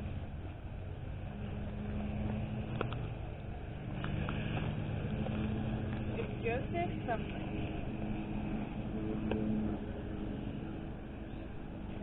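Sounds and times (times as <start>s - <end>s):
vehicle engine humming: 0.0s - 12.0s
faint clicks: 2.7s - 3.2s.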